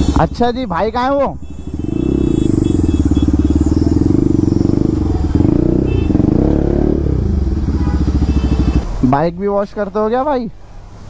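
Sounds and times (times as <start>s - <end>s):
motorcycle engine idling: 0.0s - 9.0s.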